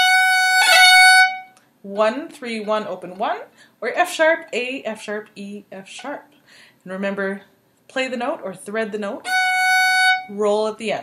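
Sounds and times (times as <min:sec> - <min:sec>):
fiddle bowing long note: 0:00.0 - 0:01.6, 0:09.3 - 0:10.3.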